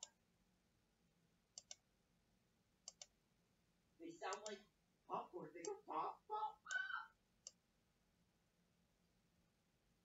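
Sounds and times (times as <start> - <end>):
computer mouse clicks: 1.5 - 1.8, 2.8 - 3.2.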